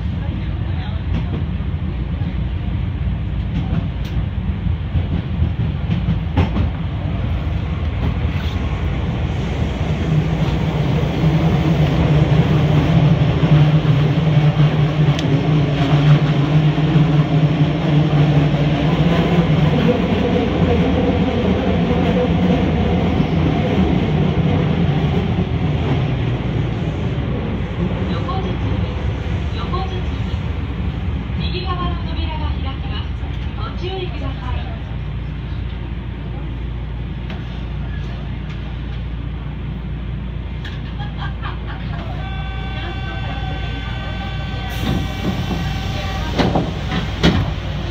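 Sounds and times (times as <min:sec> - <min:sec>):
train running gear rumble: 0:00.0 - 0:47.9.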